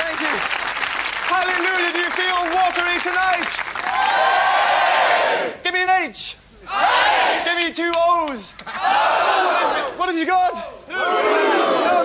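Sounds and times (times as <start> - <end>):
audience yelling: 2.7 - 5.6, 6.7 - 7.7, 8.7 - 12.0.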